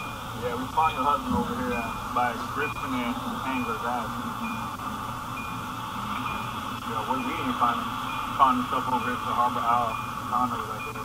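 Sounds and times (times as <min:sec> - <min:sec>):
faint high-pitched tones: 0:00.0 - 0:11.0
intercom line hiss: 0:00.0 - 0:11.0
low hum: 0:00.0 - 0:11.0.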